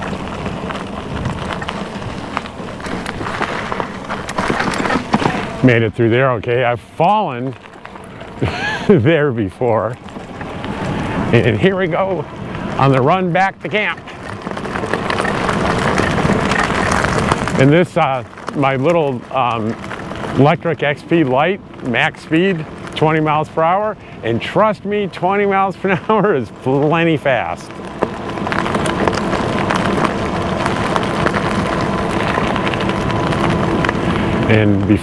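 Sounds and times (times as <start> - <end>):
bike tyres crunching on gravel: 0.0 - 35.0.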